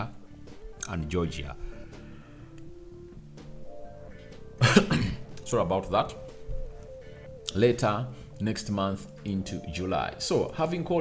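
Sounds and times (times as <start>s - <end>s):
quiet background music: 0.0s - 11.0s
man coughing: 4.6s - 5.3s.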